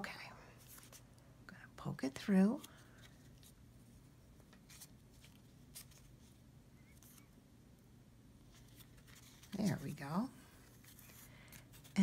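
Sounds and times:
faint clicks and rustles of cardboard: 0.6 - 1.3, 2.2 - 7.4, 8.4 - 12.0.

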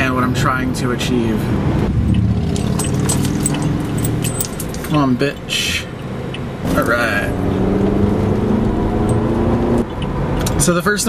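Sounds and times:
car engine and road noise: 0.0 - 11.0
metallic jingling and clinking: 2.4 - 5.0.

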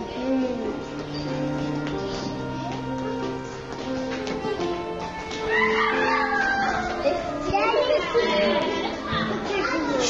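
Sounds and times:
instrumental background music: 0.0 - 10.0
young children calling and chattering: 0.0 - 10.0.

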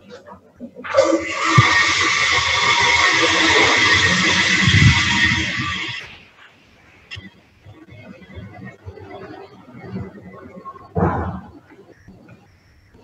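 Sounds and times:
loud rushing noise: 0.9 - 6.2.

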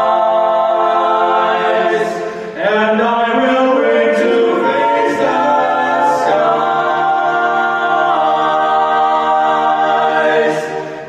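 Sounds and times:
men singing a cappella harmony: 0.0 - 11.0.

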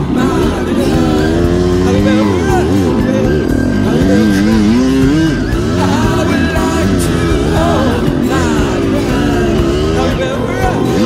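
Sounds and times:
dirt bike engine revving: 0.0 - 11.0
music playing: 0.0 - 11.0.

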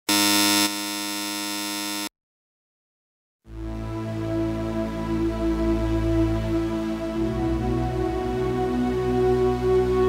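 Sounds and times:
electronic buzzer tone: 0.0 - 2.1.

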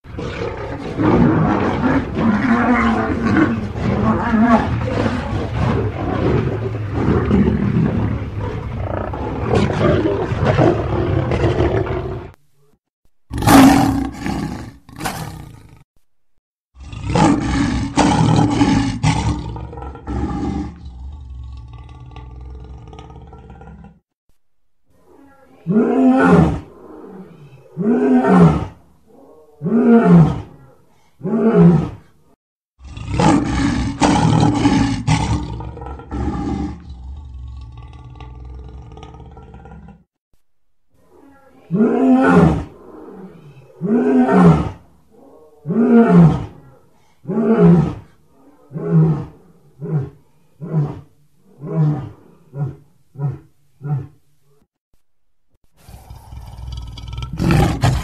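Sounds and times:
lion roaring: 0.1 - 12.4, 16.8 - 24.0, 32.8 - 40.1, 41.1 - 54.2, 55.8 - 58.0.

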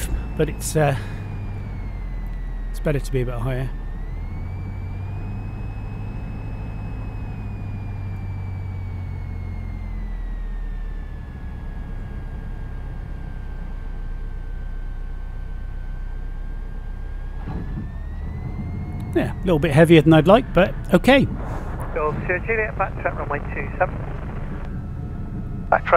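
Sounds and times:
aircraft engine hum: 0.0 - 25.9
thin engine whine: 0.0 - 25.9.

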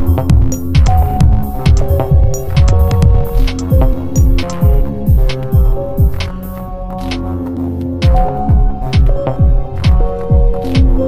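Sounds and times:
deep kick drum: 0.0 - 6.4, 8.0 - 11.0
sharp high percussion ticks: 0.0 - 7.3
electronic techno music: 0.0 - 11.0
held synth notes: 0.0 - 11.0.

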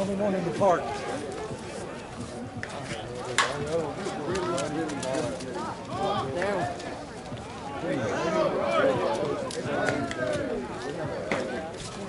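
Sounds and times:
players and spectators talking: 0.0 - 12.0.

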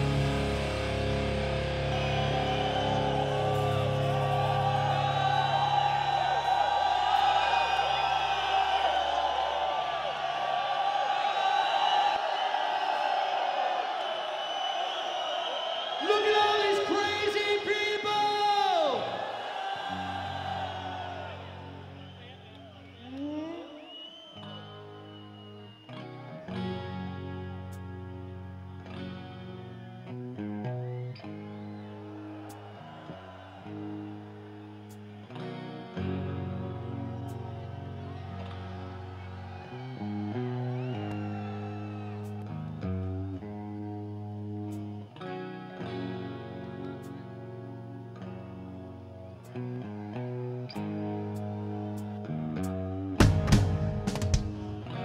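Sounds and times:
rock band playing live: 0.0 - 5.2, 53.2 - 55.0
electric guitar chugging riffs: 0.0 - 5.4
crowd voices: 0.0 - 15.8.

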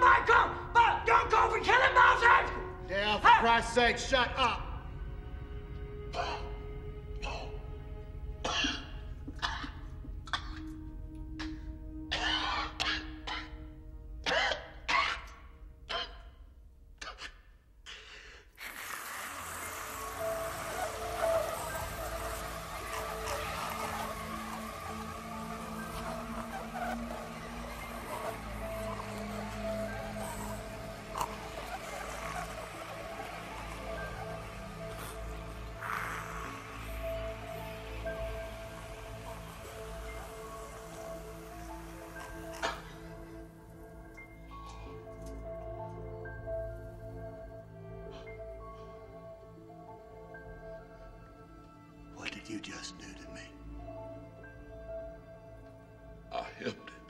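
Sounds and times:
film score low sustained notes: 0.0 - 17.0, 20.0 - 57.0
low musical drone: 0.6 - 16.1, 19.1 - 57.0
man coughing and hacking: 8.4 - 10.7, 14.2 - 16.2.

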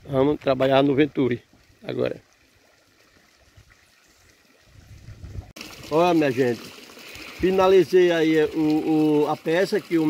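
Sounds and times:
water splashing into tank: 1.6 - 10.0.

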